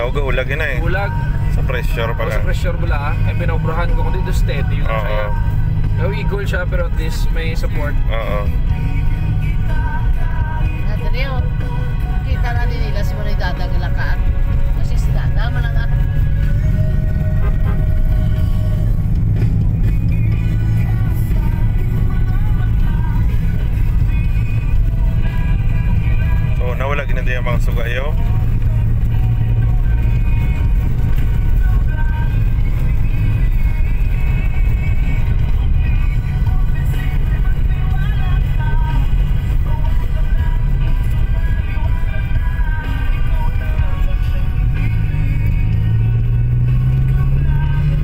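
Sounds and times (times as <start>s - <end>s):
car engine and road noise: 0.0s - 48.0s
music playing: 0.0s - 48.0s
vehicle rumble from inside cabin: 0.0s - 48.0s.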